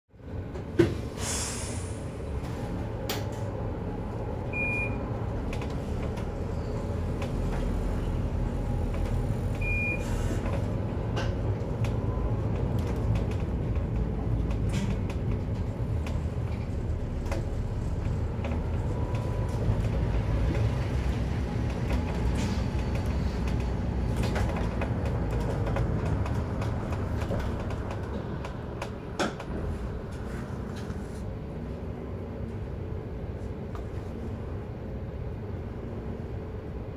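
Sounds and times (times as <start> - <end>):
road noise: 0.1 - 36.9
bus engine running: 0.2 - 36.9.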